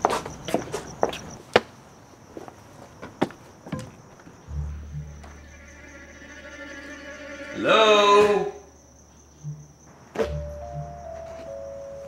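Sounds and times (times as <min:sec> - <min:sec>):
footsteps on a hard path: 0:00.0 - 0:04.4
crickets chirping: 0:00.0 - 0:12.0
low droning music: 0:04.5 - 0:07.6, 0:08.6 - 0:12.0.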